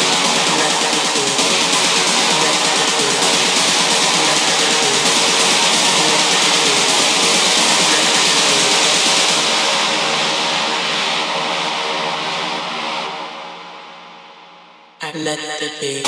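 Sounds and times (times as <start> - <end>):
techno synth wash: 0.0 - 13.8.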